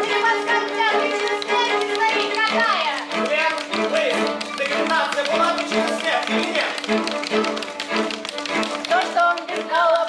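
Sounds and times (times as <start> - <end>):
sharp taps: 0.0 - 10.0
string ensemble playing: 0.0 - 10.0.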